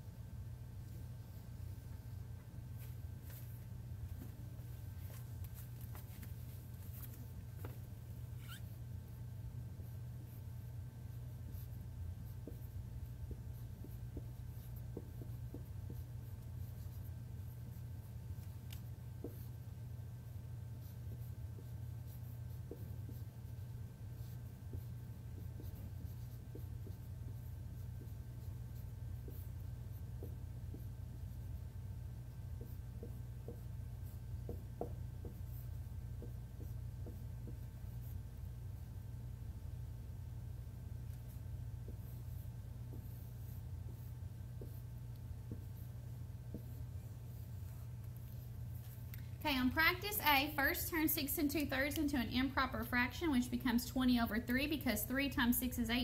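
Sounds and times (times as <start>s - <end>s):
low steady hum: 0.0s - 56.0s
marker writing on a whiteboard: 2.8s - 8.7s, 9.8s - 49.1s
marker squeaking on whiteboard: 8.4s - 8.8s, 20.8s - 31.4s.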